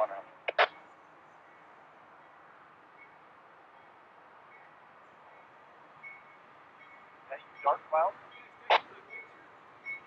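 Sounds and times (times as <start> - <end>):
voice over two-way radio: 0.0 - 0.7, 7.3 - 9.2.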